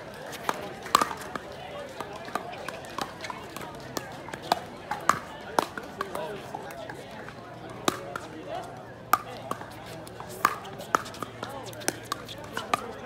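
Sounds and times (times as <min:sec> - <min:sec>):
murmur of voices: 0:00.0 - 0:13.0
paddles hitting plastic ball: 0:00.2 - 0:13.0.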